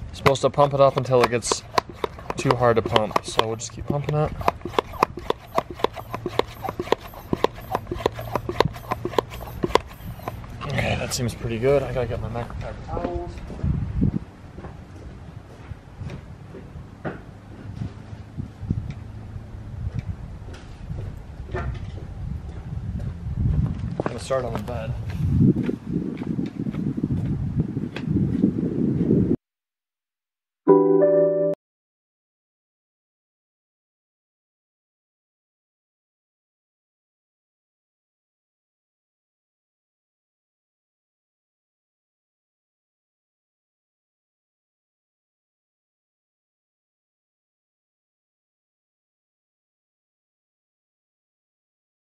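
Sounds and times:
wind rumbling on microphone: 0.0 - 29.4
pressure sprayer plunger clicking: 0.2 - 10.6.

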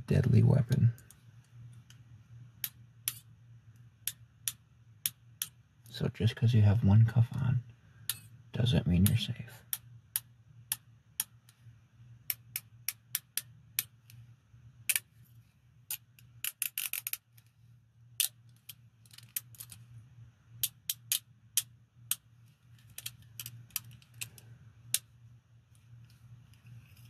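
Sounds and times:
faint low hum: 0.0 - 27.0
metal handcuffs clicking: 2.6 - 3.3, 15.9 - 17.2, 20.6 - 22.2, 22.9 - 25.1.

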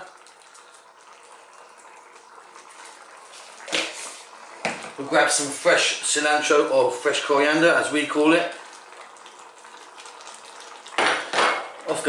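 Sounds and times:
curry bubbling in a pan: 0.0 - 12.0.

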